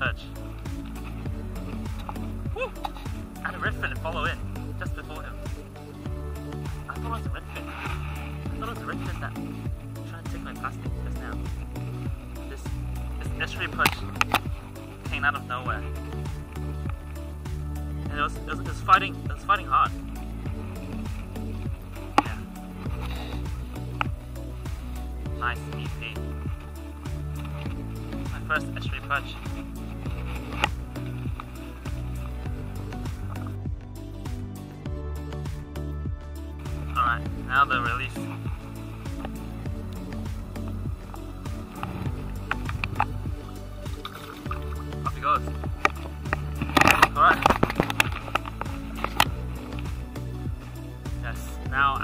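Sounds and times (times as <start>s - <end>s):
background music with steady beat: 0.0s - 52.0s.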